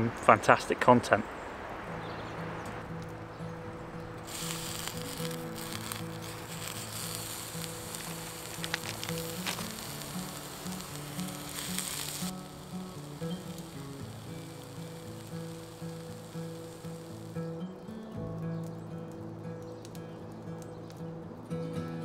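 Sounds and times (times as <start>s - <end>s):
sausages sizzling in a frying pan: 4.2s - 17.6s.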